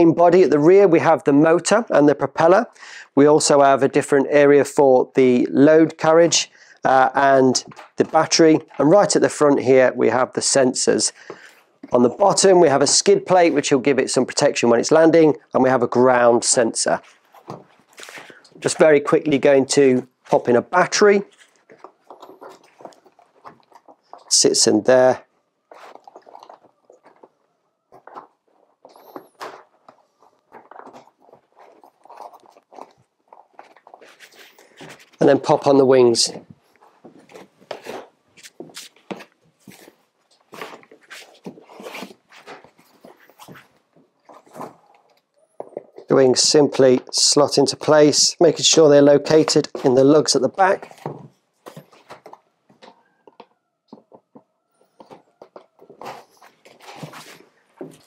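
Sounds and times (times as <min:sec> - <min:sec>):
crinkly rustling: 0:16.8 - 0:19.3, 0:20.1 - 0:24.4, 0:25.1 - 0:46.1, 0:50.6 - 0:53.2, 0:53.9 - 0:58.0.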